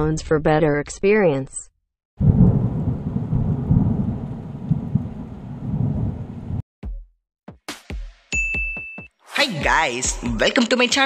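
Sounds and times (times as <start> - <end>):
rumbling thunder: 2.2 - 6.6.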